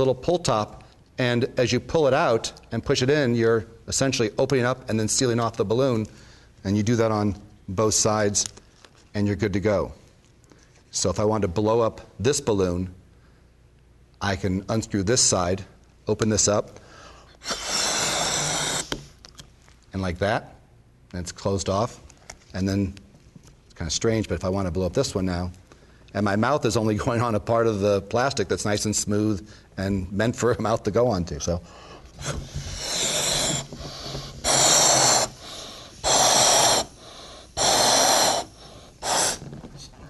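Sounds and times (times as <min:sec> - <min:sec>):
breath blowing through spout: 0:16.8 - 0:19.2, 0:31.7 - 0:39.6.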